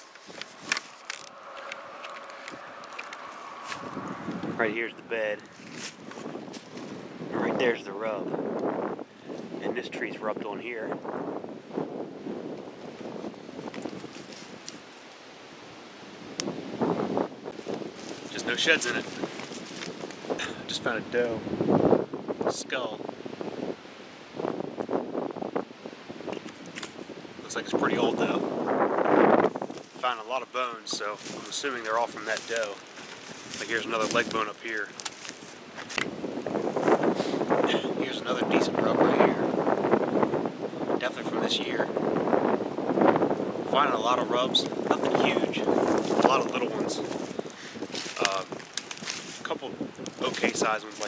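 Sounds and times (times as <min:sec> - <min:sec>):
rustling handling noise: 0:00.0 - 0:04.5, 0:05.4 - 0:07.0, 0:13.6 - 0:15.2, 0:17.6 - 0:20.4, 0:30.9 - 0:36.1, 0:45.8 - 0:51.0
footsteps crunching dry leaves: 0:00.0 - 0:04.6, 0:05.4 - 0:07.1, 0:12.8 - 0:15.0, 0:17.5 - 0:20.4, 0:29.5 - 0:30.3, 0:30.9 - 0:37.5, 0:45.6 - 0:51.0
wind noise on microphone: 0:00.0 - 0:51.0.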